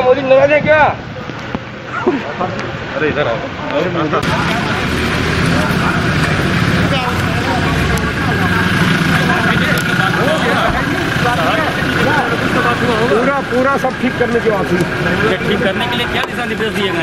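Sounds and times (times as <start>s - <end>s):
voices chattering: 0.0s - 17.0s
car engines rumbling past: 1.0s - 17.0s.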